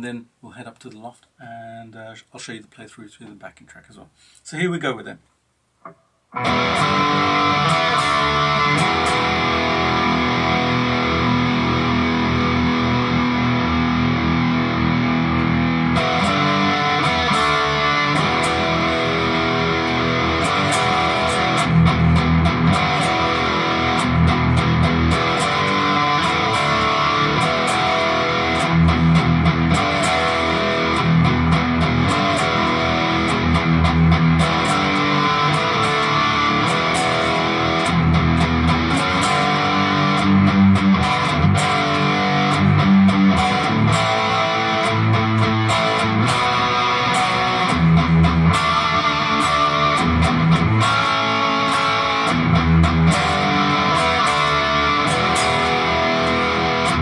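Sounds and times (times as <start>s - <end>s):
distorted electric guitar chords: 5.8s - 57.0s.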